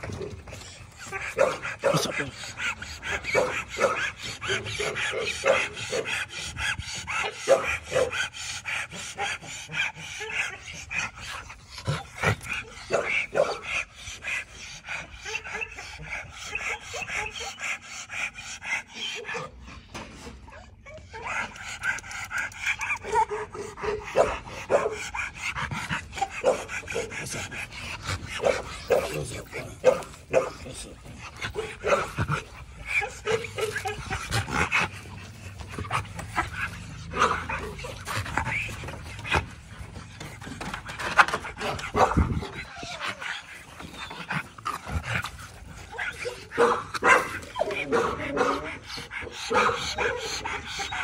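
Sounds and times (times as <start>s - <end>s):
dog panting: 0.0s - 51.0s
dog barking: 1.4s - 2.2s, 3.3s - 6.1s, 7.2s - 8.2s, 12.9s - 13.7s, 23.0s - 25.0s, 28.4s - 30.7s, 31.6s - 32.2s, 33.0s - 34.1s, 46.1s - 48.7s, 49.5s - 50.9s
dog whining: 15.2s - 18.0s, 41.6s - 46.6s.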